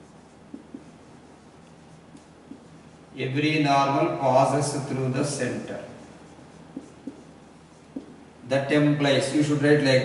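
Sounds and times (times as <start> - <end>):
marker pen scratching on whiteboard: 0.0 - 3.2, 5.2 - 8.3
marker tip ticking on board: 0.5 - 1.0, 6.7 - 7.3, 7.9 - 8.2.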